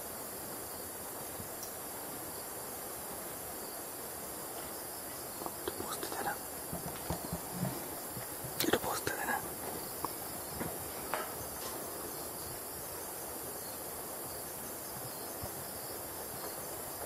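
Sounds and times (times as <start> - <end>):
insects chorus: 0.0 - 17.0.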